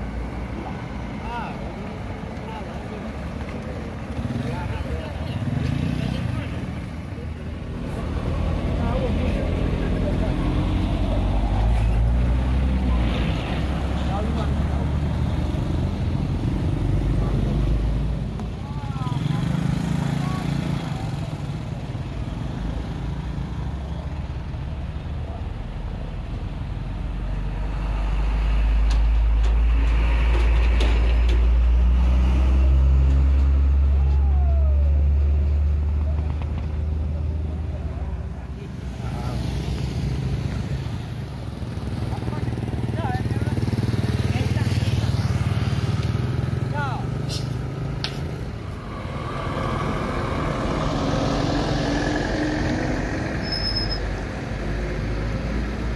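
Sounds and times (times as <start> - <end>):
rumble of passing vehicles: 0.0 - 55.9.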